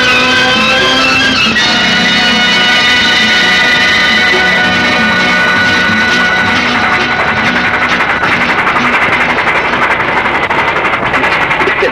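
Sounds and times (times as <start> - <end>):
song music: 0.0 - 11.4
vehicle engine running: 0.0 - 11.9.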